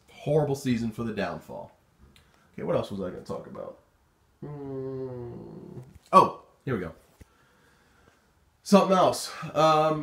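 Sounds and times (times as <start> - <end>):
man humming thinking sound: 4.4 - 6.0.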